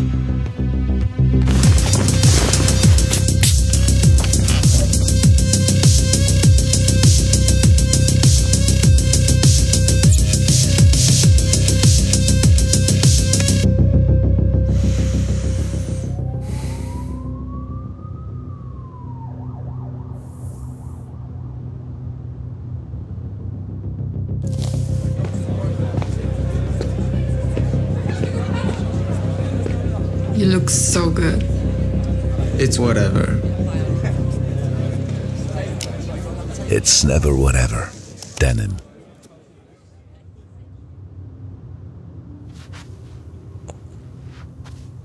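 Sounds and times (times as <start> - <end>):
low drone: 13.6 - 25.2.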